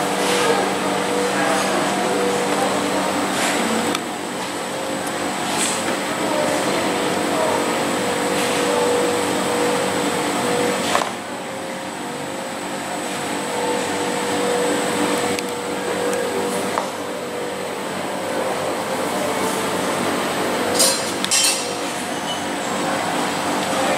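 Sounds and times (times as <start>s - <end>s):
ventilation unit hum: 0.0s - 23.9s.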